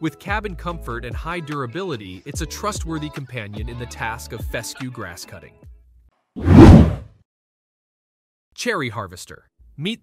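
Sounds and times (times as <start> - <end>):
loud whoosh sound effect: 6.4 - 7.0.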